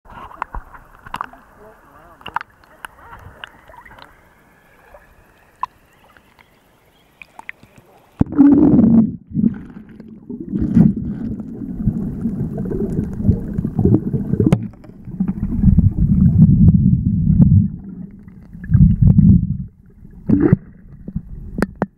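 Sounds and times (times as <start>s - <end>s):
muffled water rumble and sloshing: 0.1s - 6.6s, 7.2s - 21.9s
microphone plunging underwater: 8.2s - 21.9s.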